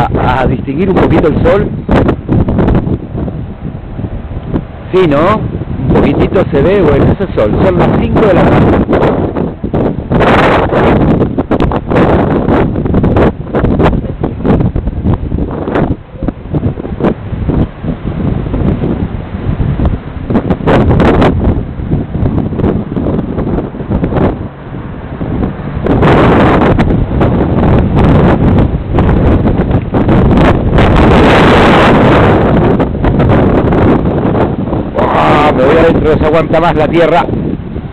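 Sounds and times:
strong wind gusts on microphone: 0.0s - 37.9s.

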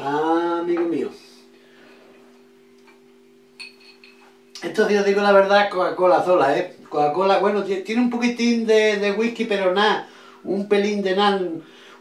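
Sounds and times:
faint low hum: 0.0s - 12.0s
drinking glass clinking: 1.8s - 4.4s.

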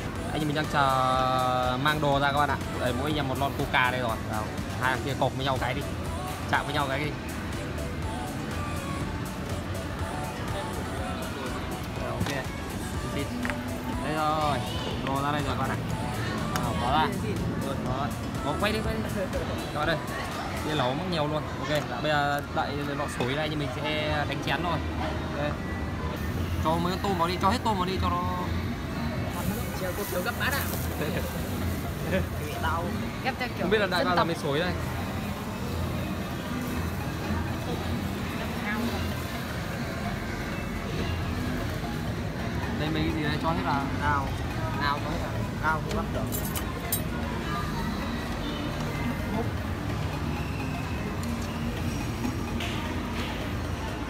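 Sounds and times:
background music: 0.0s - 54.0s
murmur of voices: 0.0s - 54.0s
tableware clinking: 46.2s - 47.1s.

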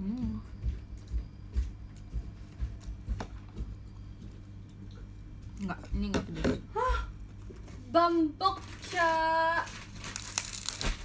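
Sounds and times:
dry crinkling crackling: 7.2s - 11.0s.

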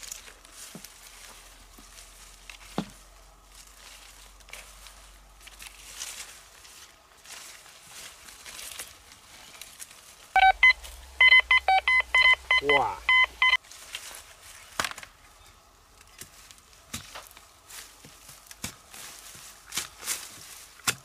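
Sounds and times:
rustling of plants: 0.0s - 11.3s, 12.6s - 21.0s
metal detector beeping: 10.4s - 13.6s.

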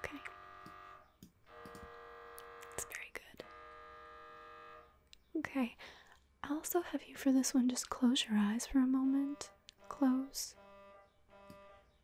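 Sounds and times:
mri scanner buzzing: 0.0s - 2.8s, 3.4s - 5.0s, 9.2s - 12.0s.

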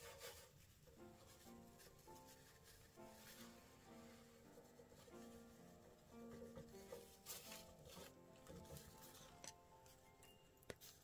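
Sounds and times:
faint background music: 0.0s - 11.0s
paper napkin rustling: 6.7s - 10.0s.

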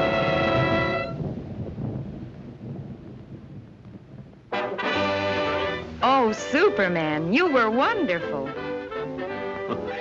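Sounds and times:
low rumble: 0.0s - 7.3s.

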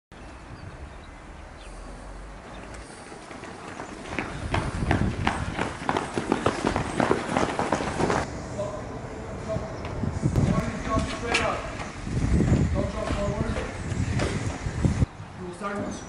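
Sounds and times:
footsteps running on asphalt: 2.4s - 8.3s, 9.8s - 15.0s.

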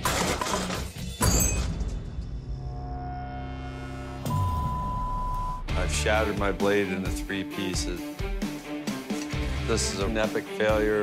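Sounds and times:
dramatic music with held tones: 0.4s - 11.0s.

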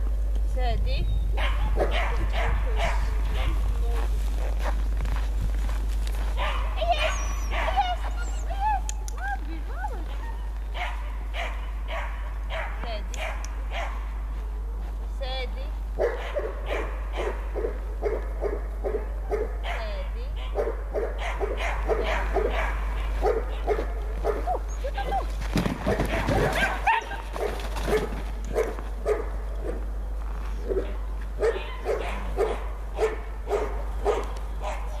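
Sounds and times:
puppy barking: 1.4s - 3.8s, 6.4s - 8.6s, 10.1s - 14.1s, 16.0s - 25.3s, 25.9s - 29.8s, 30.6s - 35.0s
puppy whining: 6.8s - 10.6s, 24.4s - 25.3s.

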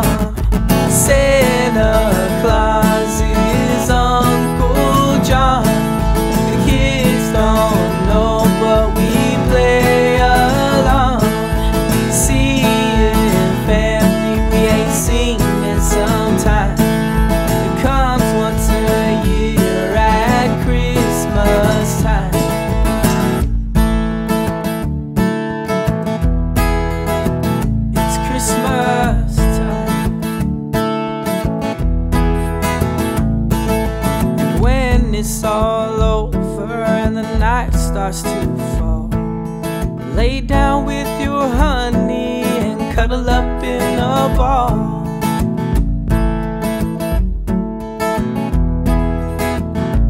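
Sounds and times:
strummed acoustic guitar: 0.0s - 50.0s.

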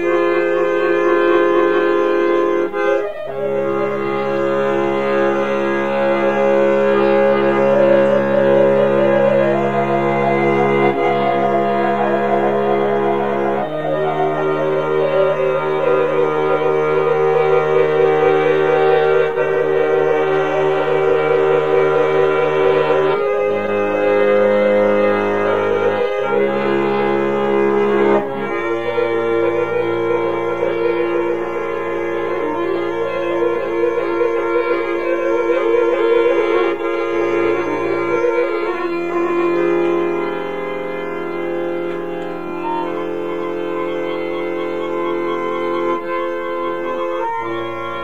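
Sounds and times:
accordion playing chords: 0.0s - 48.0s.

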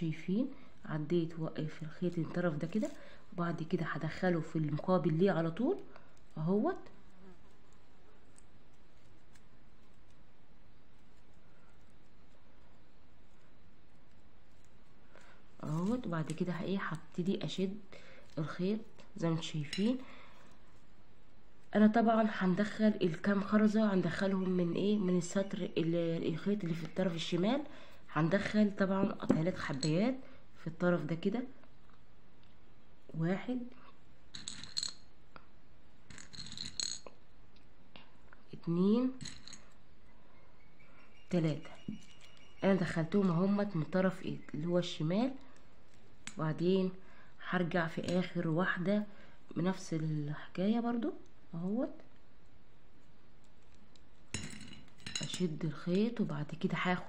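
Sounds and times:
nylon thread rustling: 0.0s - 40.2s, 45.3s - 50.2s, 51.1s - 56.4s
low background hiss: 0.0s - 57.0s
plastic beads clicking: 7.7s - 19.1s, 34.3s - 35.2s, 36.0s - 37.7s.

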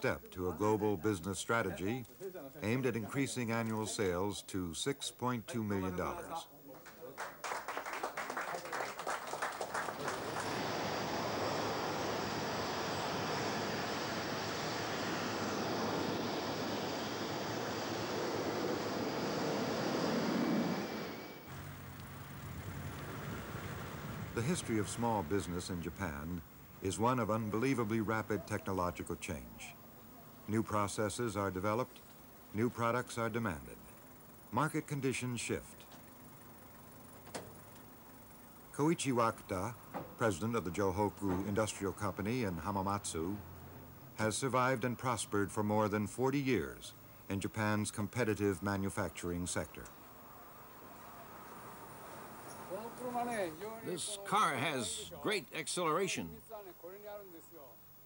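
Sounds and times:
faint steady hum: 0.0s - 58.0s
people clapping: 6.7s - 11.3s
jet airliner taking off: 9.5s - 27.8s
low hum: 9.6s - 30.6s.

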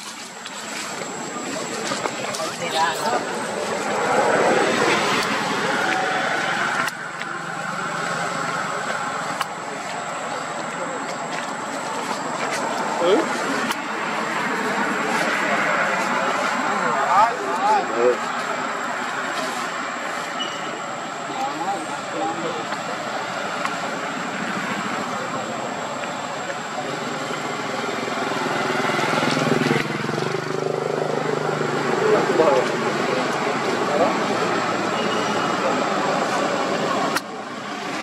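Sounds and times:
indistinct voices: 0.0s - 38.0s
steady traffic noise: 0.0s - 38.0s.

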